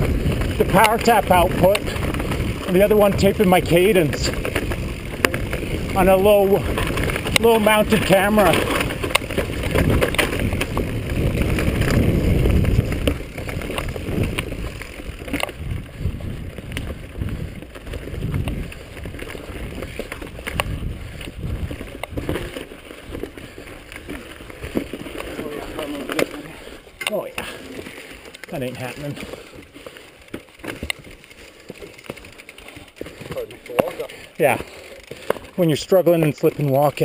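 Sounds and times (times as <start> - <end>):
wind rumbling on microphone: 0.0 - 26.8
bike knocking on bumps: 0.0 - 37.0
bike rattling on dirt trail: 0.0 - 37.0.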